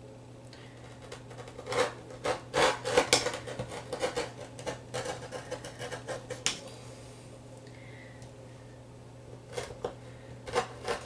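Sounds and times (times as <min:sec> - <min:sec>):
rotary cutter cutting fabric: 0:01.3 - 0:06.5, 0:10.5 - 0:11.0.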